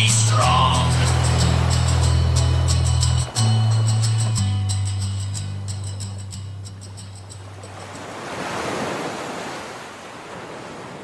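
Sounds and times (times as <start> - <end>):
song: 0.0 - 6.7
ocean wave: 0.0 - 11.0.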